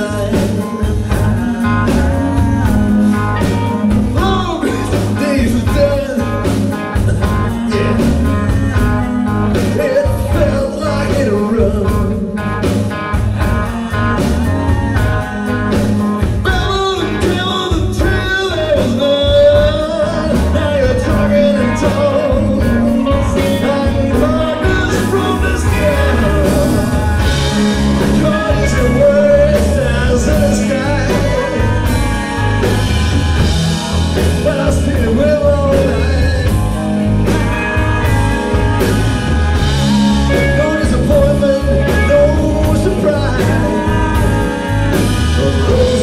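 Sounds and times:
electric guitars: 0:00.0 - 0:46.0
man singing: 0:00.0 - 0:46.0
steady drum beat: 0:00.0 - 0:46.0.

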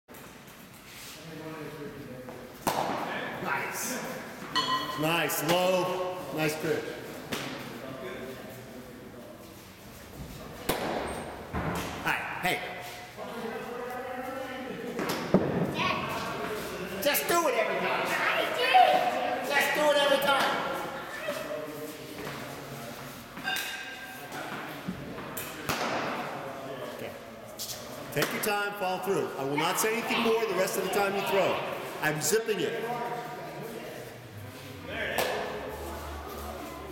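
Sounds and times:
faint voices echoing: 0:01.2 - 0:36.9.

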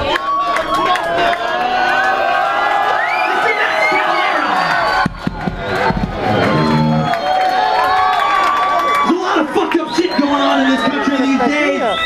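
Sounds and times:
crowd cheering and yelling: 0:00.0 - 0:12.0
short low-pitched note: 0:06.2 - 0:07.2.

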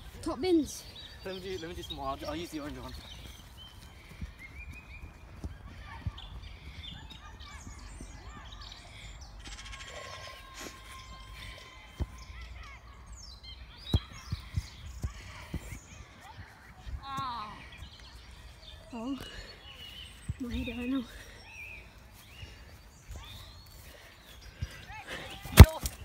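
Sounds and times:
football kicks on grass: 0:25.4 - 0:26.0.

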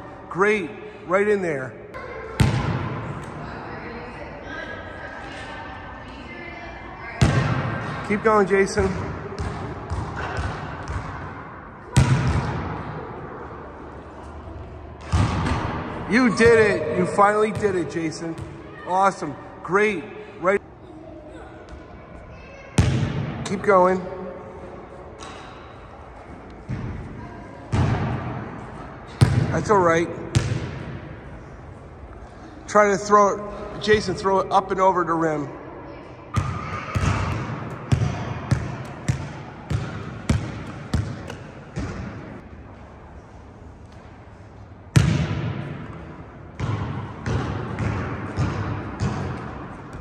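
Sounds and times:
basketball bouncing on gym floor: 0:02.4 - 0:03.4, 0:07.2 - 0:07.8, 0:08.7 - 0:11.3, 0:11.9 - 0:12.8, 0:15.0 - 0:16.8, 0:22.8 - 0:23.6, 0:29.1 - 0:29.7, 0:30.3 - 0:31.0, 0:36.3 - 0:42.3, 0:44.9 - 0:50.0.

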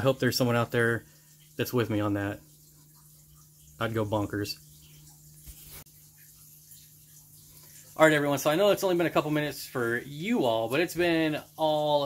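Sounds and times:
soft rustle: 0:05.4 - 0:05.9.

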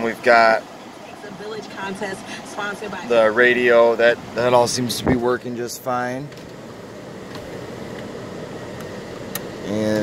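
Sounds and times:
air conditioning blower hissing: 0:00.0 - 0:10.0.

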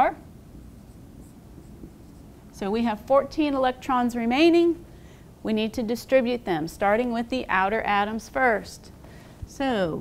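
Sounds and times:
marker scratching on whiteboard: 0:00.8 - 0:02.3.

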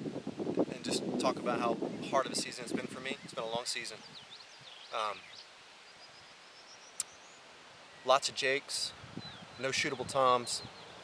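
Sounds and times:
distant songbirds singing: 0:00.0 - 0:11.0.

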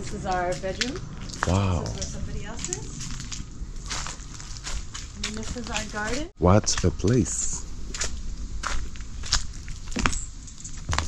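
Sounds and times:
footsteps walking: 0:00.0 - 0:11.0.

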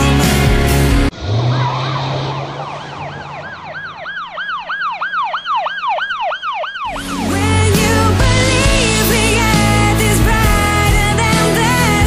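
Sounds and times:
emergency siren yelping: 0:01.3 - 0:07.7.

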